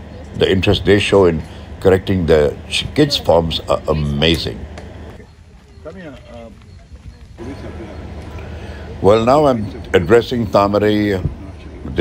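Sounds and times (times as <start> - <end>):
low steady rumble: 0.0 - 5.7
faint voices talking: 0.0 - 12.0.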